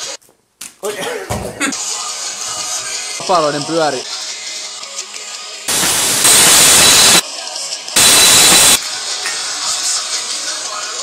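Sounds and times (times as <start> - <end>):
loud bursts of hiss: 5.7 - 7.2, 8.0 - 8.8.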